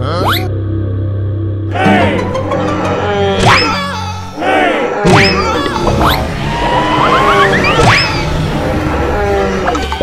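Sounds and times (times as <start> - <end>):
cartoon background music: 0.0 - 8.4
upward-sliding sound effect: 5.2 - 10.0
low drone: 5.9 - 10.0.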